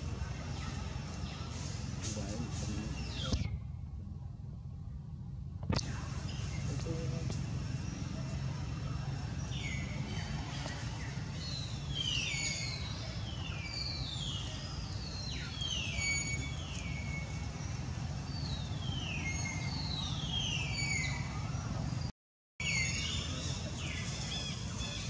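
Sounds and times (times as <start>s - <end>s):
low steady hum: 0.0s - 13.4s.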